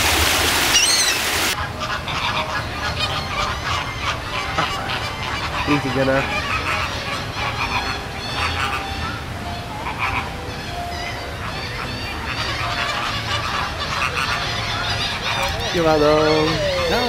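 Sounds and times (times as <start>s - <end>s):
flamingos calling: 0.5s - 17.0s.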